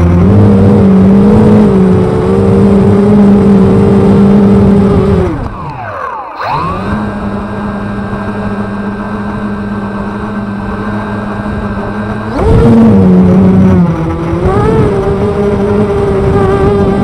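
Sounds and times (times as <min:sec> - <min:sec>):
quadcopter motors whining: 0:00.0 - 0:17.0.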